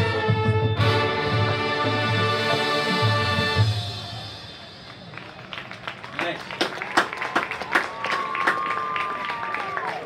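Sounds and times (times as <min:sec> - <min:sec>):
marching band playing: 0:00.0 - 0:05.9.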